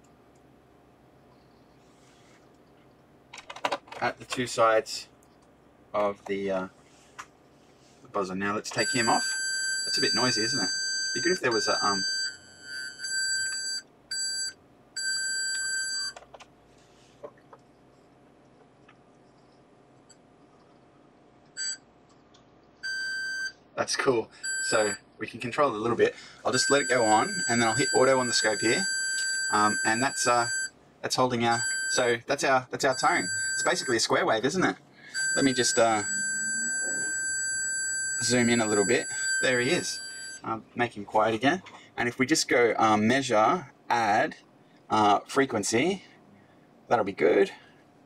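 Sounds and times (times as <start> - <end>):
square-wave beeping tone: 8.8 - 14.3, 26.6 - 30.7, 32.9 - 34.1, 35.1 - 40.4.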